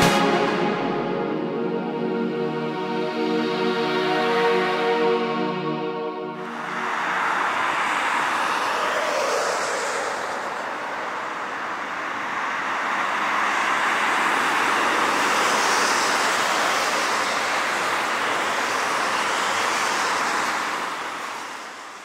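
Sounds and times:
steady rushing noise: 0.0 - 21.7.

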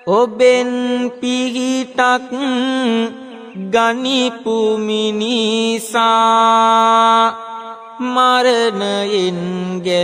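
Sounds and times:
man chanting verse: 0.0 - 10.0.

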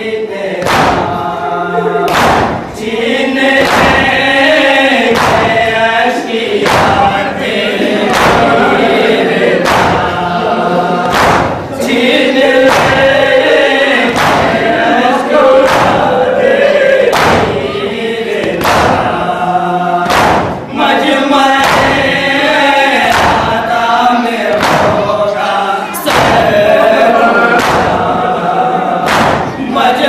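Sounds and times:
group of men singing: 0.0 - 30.0
chest-beating thuds: 0.6 - 1.4, 2.0 - 2.8, 3.4 - 4.4, 5.1 - 5.8, 6.6 - 10.3, 11.0 - 17.7, 18.4 - 19.2, 20.0 - 20.7, 21.5 - 22.4, 23.0 - 23.7, 24.5 - 25.3, 26.0 - 28.4, 29.0 - 29.7.

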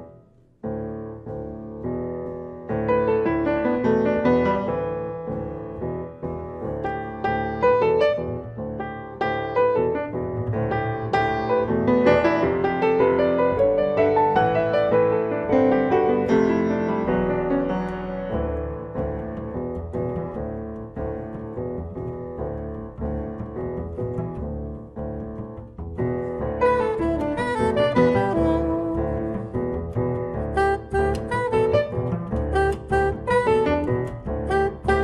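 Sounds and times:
grand piano: 0.0 - 35.0
upright bass: 17.0 - 35.0
soprano saxophone melody: 26.6 - 35.0.

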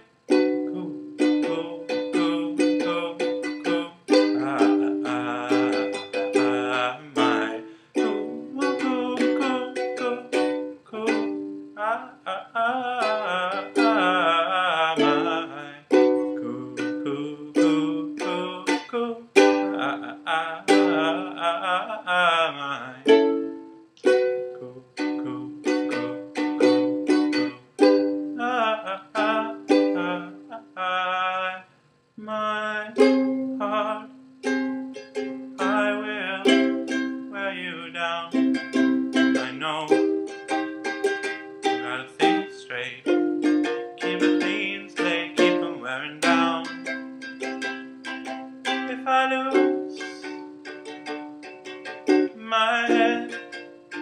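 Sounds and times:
ukulele strummed in chords: 0.0 - 30.8, 32.7 - 54.0.

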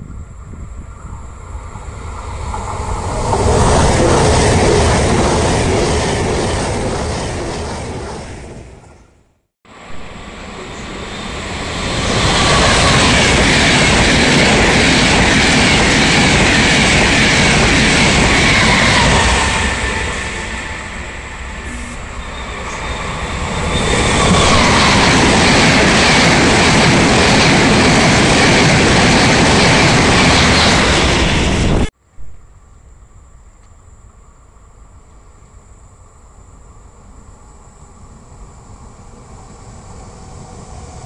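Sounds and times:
electric trains passing: 0.0 - 41.0.

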